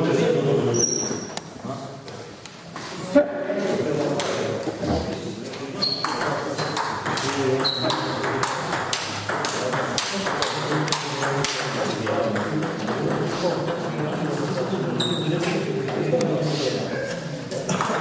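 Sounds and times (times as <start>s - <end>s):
voices talking: 3.2s - 18.0s
table tennis ball clicking: 6.1s - 14.2s.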